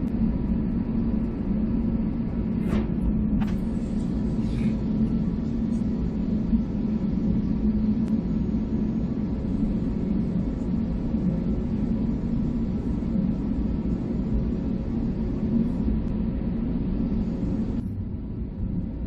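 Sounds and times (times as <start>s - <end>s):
jet engines idling in cabin: 0.0s - 19.0s.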